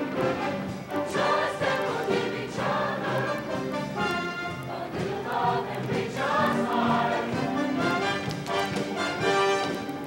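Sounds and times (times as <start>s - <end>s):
choir singing with accompaniment: 0.0s - 9.9s.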